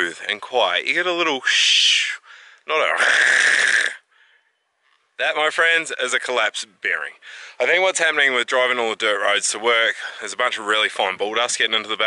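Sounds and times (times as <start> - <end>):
man imitating grinding rasp: 2.8 - 4.1.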